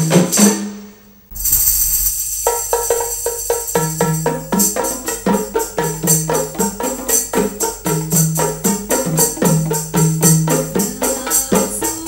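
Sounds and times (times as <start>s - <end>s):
frame drums beaten in rhythm: 0.0s - 12.0s
metallic jingle: 1.3s - 12.0s.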